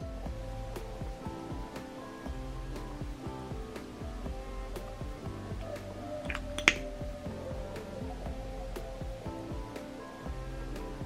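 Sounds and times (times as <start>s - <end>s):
music with sustained notes: 0.0s - 11.0s
snapping beat: 4.8s - 10.0s.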